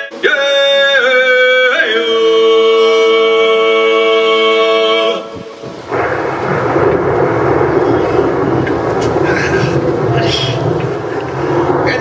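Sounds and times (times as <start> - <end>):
rough rumbling noise: 0.9 - 12.0.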